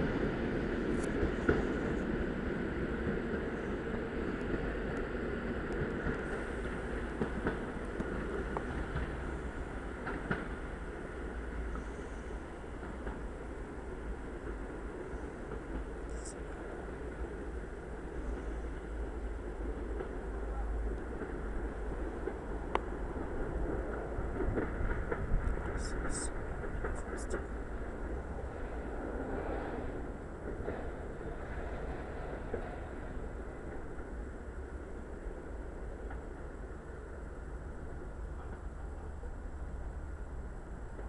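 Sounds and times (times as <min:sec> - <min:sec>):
train wheels rumbling on rails: 0:00.0 - 0:41.0.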